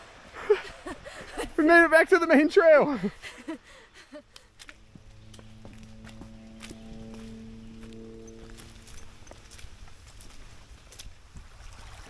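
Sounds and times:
footsteps on wet dirt trail: 4.3s - 12.0s
music with sustained chords: 4.4s - 10.7s.

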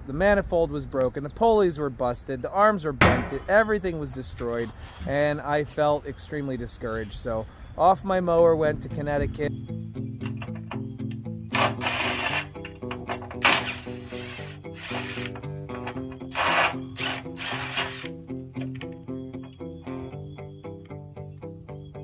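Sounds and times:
guitar background music: 8.6s - 22.0s
cordless drill driving bolts: 10.2s - 19.5s.

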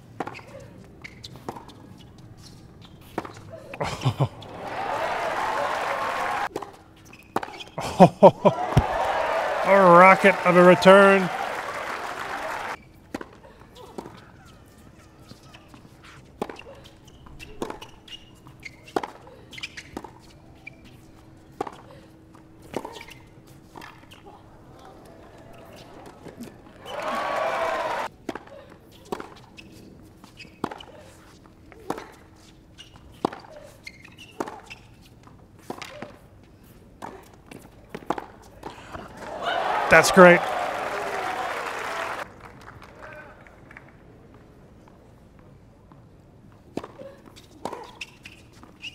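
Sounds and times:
tennis ball bouncing: 0.2s - 3.5s, 4.4s - 7.7s, 13.0s - 24.3s, 25.3s - 35.0s, 37.0s - 39.3s
racquets striking tennis ball: 8.5s - 14.2s, 37.0s - 42.2s.

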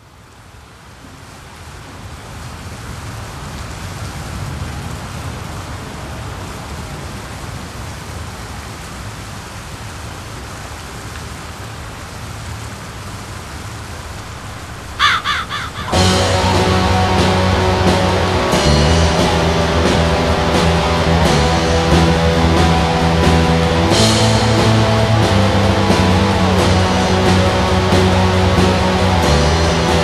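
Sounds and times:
steady rushing noise: 13.9s - 30.0s
crow cawing: 14.1s - 17.0s
distorted metal guitars: 14.1s - 30.0s.

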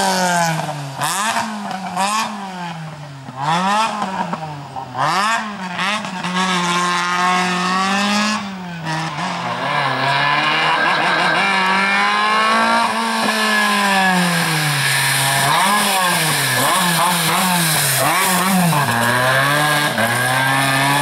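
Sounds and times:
car engine revving hard: 0.0s - 2.8s, 3.4s - 21.0s.

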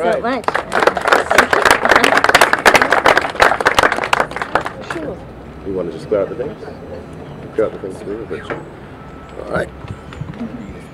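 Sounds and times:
people applauding: 0.0s - 5.1s.

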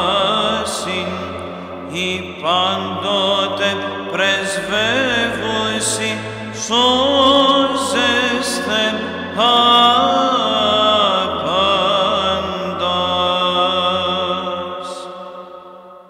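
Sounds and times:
low held vocal drone: 0.0s - 16.0s
person chanting: 0.0s - 16.0s.

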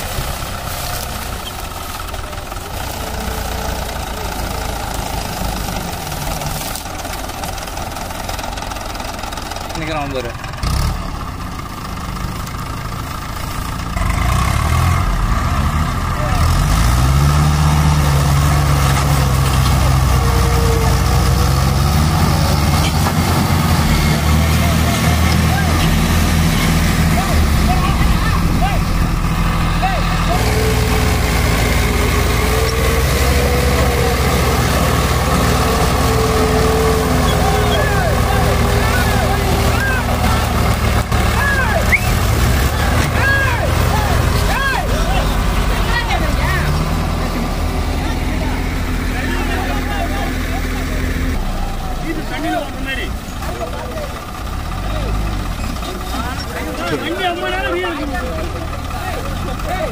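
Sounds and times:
diesel tractor engines running hard: 0.0s - 59.9s.

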